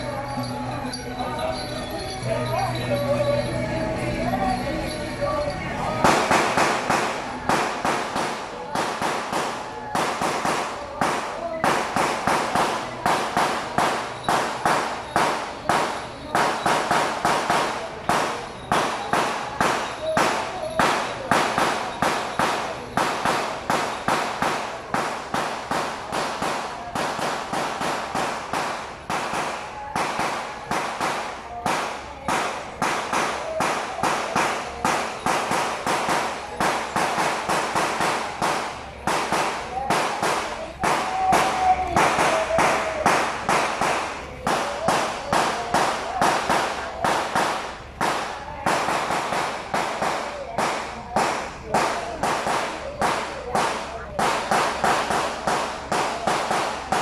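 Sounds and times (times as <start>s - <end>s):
crowd voices: 0.0s - 57.0s
firecrackers cracking: 0.0s - 57.0s.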